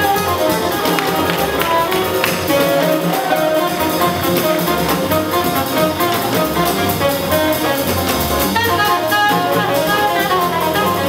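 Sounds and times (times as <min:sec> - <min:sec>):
double bass: 0:00.0 - 0:11.0
drums: 0:00.0 - 0:11.0
piano: 0:00.0 - 0:11.0
saxophone: 0:00.0 - 0:11.0
sharp percussive taps: 0:00.9 - 0:02.9.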